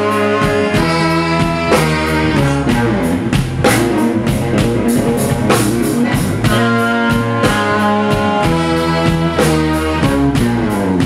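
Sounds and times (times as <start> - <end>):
drum kit steady beat: 0.0 - 11.0
electric guitar: 0.0 - 11.0.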